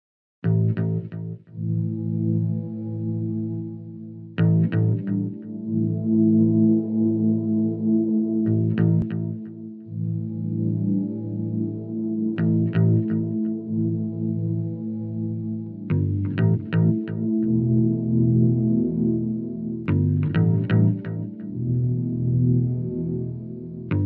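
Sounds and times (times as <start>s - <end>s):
ambient music with ringing chords: 0.5s - 24.0s.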